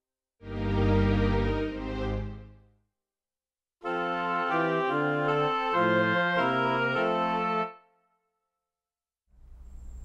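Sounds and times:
organ chords: 3.8 - 7.7.

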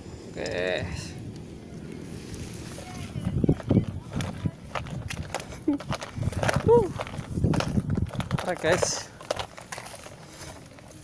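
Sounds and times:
rustling vegetation: 0.0 - 11.0
footsteps in vegetation: 1.9 - 11.0.

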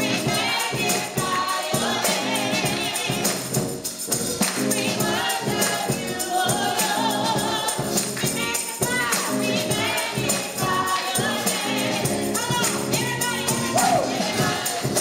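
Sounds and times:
organ chords: 0.0 - 15.0
tambourine shaken and struck: 0.0 - 15.0
voices singing with vibrato: 0.0 - 15.0.

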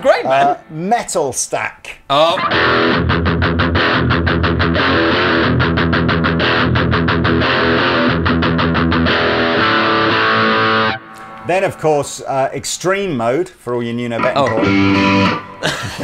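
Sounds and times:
distorted electric guitar riff: 2.2 - 12.0, 14.2 - 16.0.

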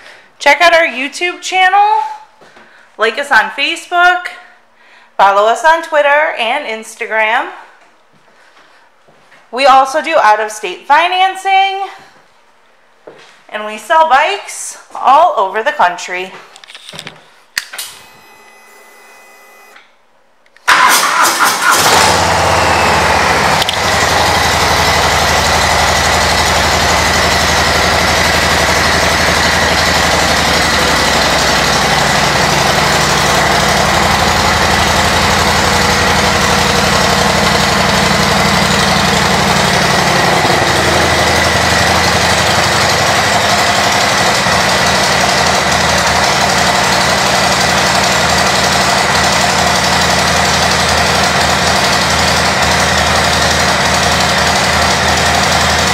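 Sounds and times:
motorcycle engine idling: 21.1 - 55.9.

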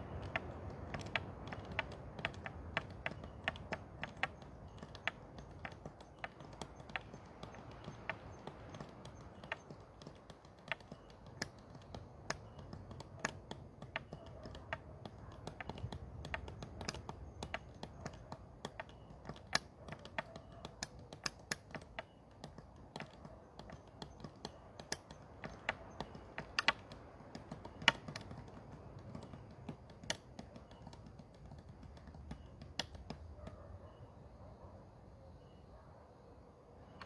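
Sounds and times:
irregular sharp clicks: 0.0 - 33.6
faint low background noise: 0.0 - 37.0.

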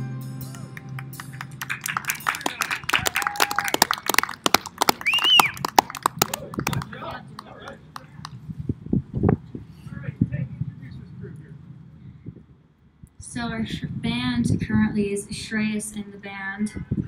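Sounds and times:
crowd cheering: 0.4 - 8.3
crowd clapping: 0.4 - 8.4.

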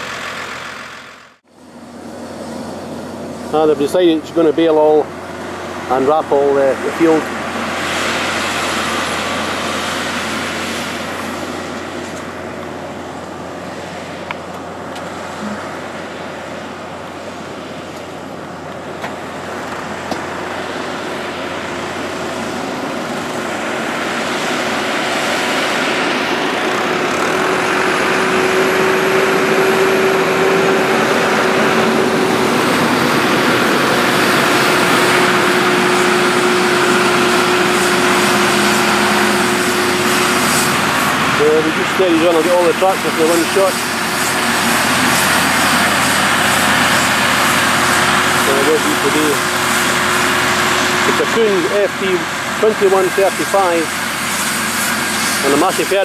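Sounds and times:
tractor engine running: 0.0 - 56.0.

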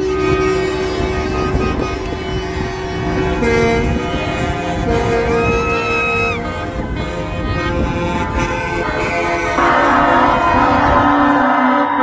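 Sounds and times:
low rumble of traffic: 0.0 - 11.5
truck air horns honking: 0.0 - 12.0.

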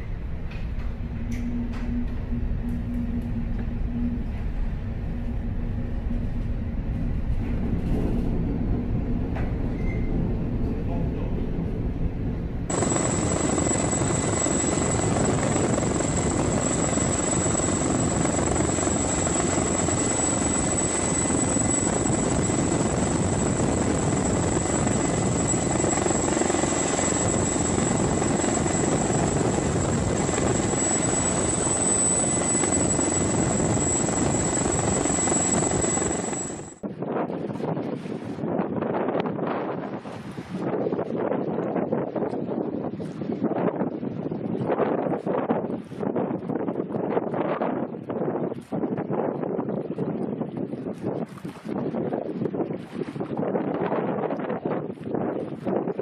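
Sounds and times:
helicopter hovering: 12.7 - 36.8.

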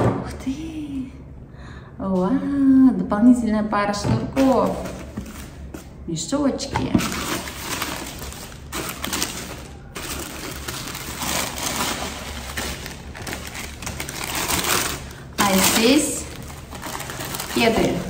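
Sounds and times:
tissue paper rustling and crinkling: 7.0 - 18.0.

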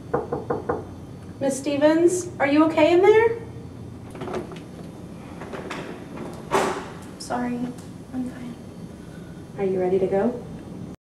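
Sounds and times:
wooden door knocks: 0.1 - 0.9
door latch clicks: 5.4 - 7.1.

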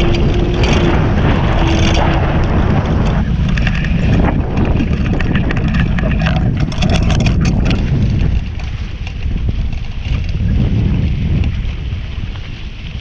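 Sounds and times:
water rushing off boat hulls: 0.0 - 13.0
wind buffeting microphone: 0.0 - 13.0.

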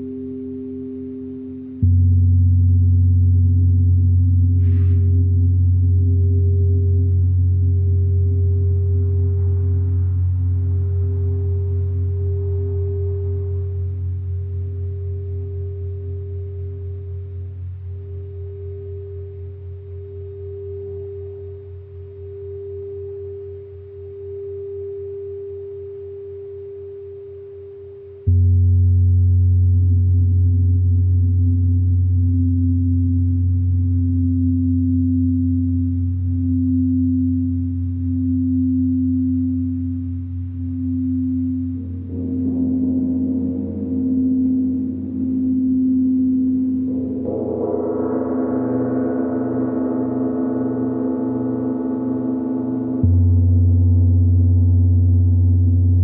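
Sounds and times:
crystal singing bowls ringing: 0.0 - 28.3, 31.3 - 56.0
lower singing bowl tones: 0.0 - 56.0.

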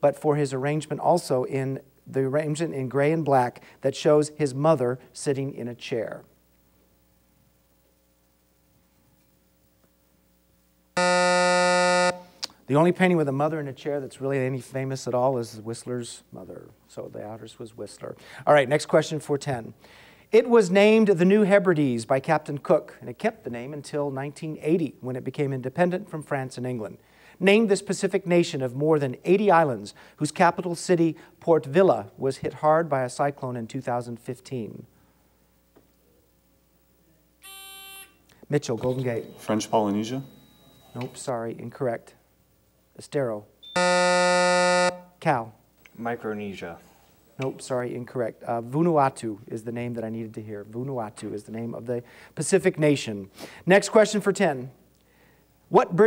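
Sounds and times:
harsh buzzer: 11.0 - 12.3, 37.4 - 38.2, 38.8 - 41.2, 43.6 - 45.2.

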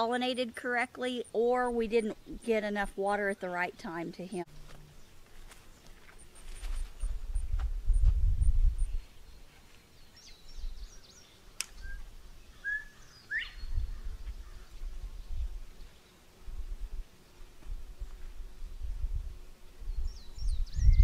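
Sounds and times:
small birds chirping: 8.8 - 16.3, 19.8 - 21.0.

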